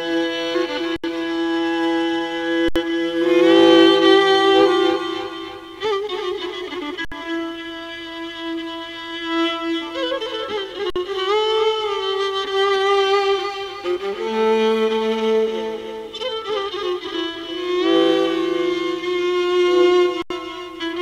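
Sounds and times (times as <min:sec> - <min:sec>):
solo violin: 0:00.0 - 0:21.0.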